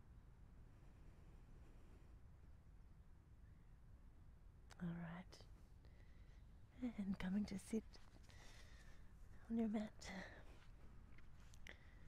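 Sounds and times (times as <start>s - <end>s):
low background noise: 0.0s - 12.0s
woman's soft voice: 4.7s - 5.5s, 6.7s - 8.1s, 9.4s - 10.6s.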